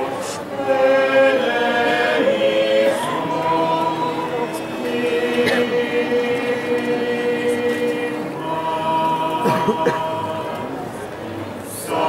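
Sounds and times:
choir singing a slow chant: 0:00.0 - 0:12.0.

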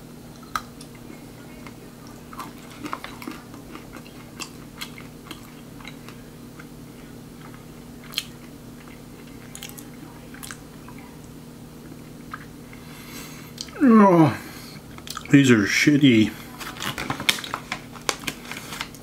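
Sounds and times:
crunchy chewing of chocolate: 0:00.3 - 0:11.1, 0:11.8 - 0:13.8, 0:14.4 - 0:15.4, 0:16.3 - 0:19.0.

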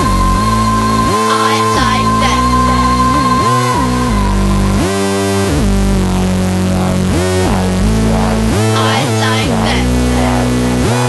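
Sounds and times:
sliding synthesizer bass: 0:00.0 - 0:11.0.

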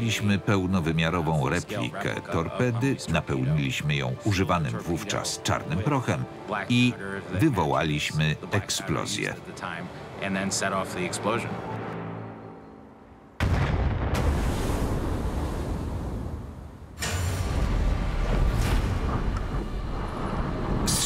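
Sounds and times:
underwater explosion blast: 0:13.4 - 0:19.7.

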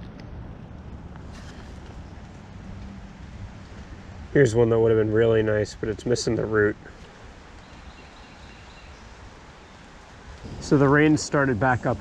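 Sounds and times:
creek running over gravel: 0:00.0 - 0:12.0.

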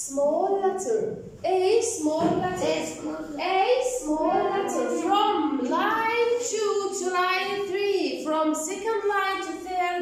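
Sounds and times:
children singing: 0:04.1 - 0:06.0.

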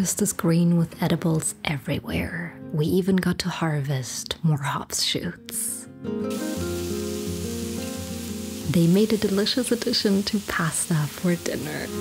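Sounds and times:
background music of held notes: 0:04.9 - 0:12.0
vegetables sizzling in frying pan: 0:06.3 - 0:12.0.

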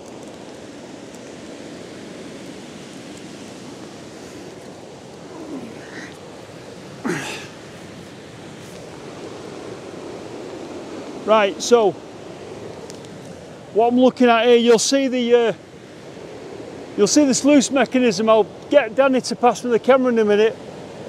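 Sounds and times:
heavy rain: 0:00.0 - 0:12.1
river rushing over a weir: 0:00.0 - 0:21.0.

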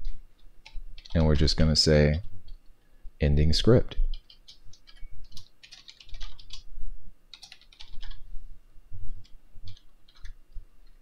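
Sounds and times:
typing on computer keyboard: 0:00.6 - 0:01.3, 0:04.1 - 0:06.7, 0:07.3 - 0:08.2, 0:09.2 - 0:10.4.

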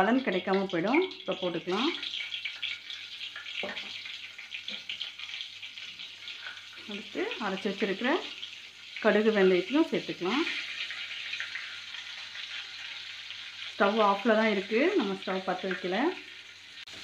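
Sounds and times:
hot oil sizzling in a pot: 0:00.0 - 0:17.0.

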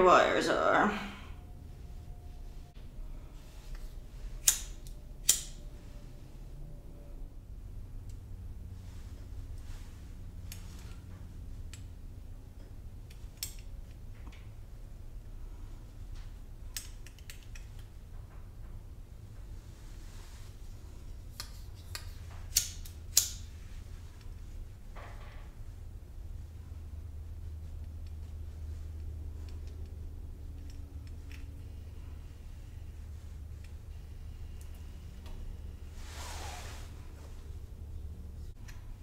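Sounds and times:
low steady hum: 0:00.0 - 0:39.0
lighter flint wheel clicks: 0:04.4 - 0:05.6.

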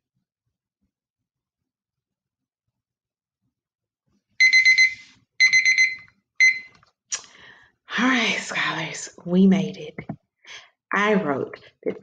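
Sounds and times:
timer alarm beeping: 0:04.4 - 0:06.8.

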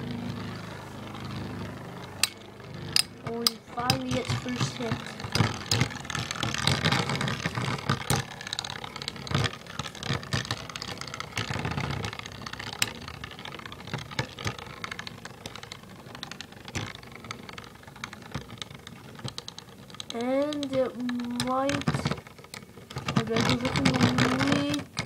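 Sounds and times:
spinning tops whirring: 0:00.0 - 0:25.0.

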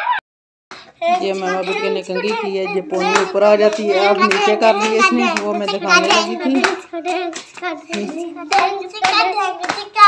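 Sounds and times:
children clapping hands: 0:00.7 - 0:10.0
child singing: 0:01.0 - 0:10.0.

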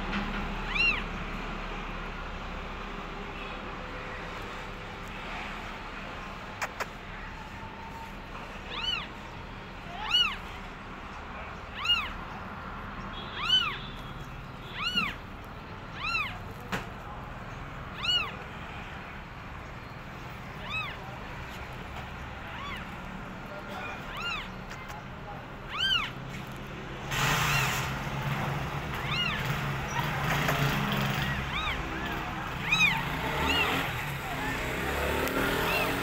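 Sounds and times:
newborn kittens mewing: 0:00.7 - 0:01.0, 0:08.7 - 0:09.2, 0:10.0 - 0:10.5, 0:11.6 - 0:12.3, 0:13.4 - 0:13.8, 0:14.7 - 0:15.2, 0:15.9 - 0:16.4, 0:17.9 - 0:18.4, 0:20.5 - 0:21.0, 0:22.4 - 0:23.0, 0:23.8 - 0:24.9, 0:25.6 - 0:26.2, 0:28.9 - 0:30.2, 0:31.0 - 0:34.0, 0:35.6 - 0:36.0.

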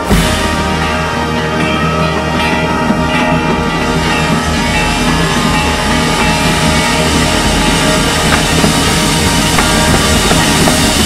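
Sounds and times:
brass sustained chords: 0:00.0 - 0:11.0
keyboards playing: 0:00.0 - 0:11.0
marching percussion: 0:00.0 - 0:11.0.

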